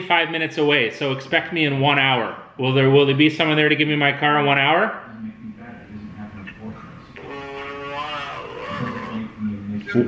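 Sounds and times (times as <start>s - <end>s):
muffled speech on phone call: 0.7s - 10.0s.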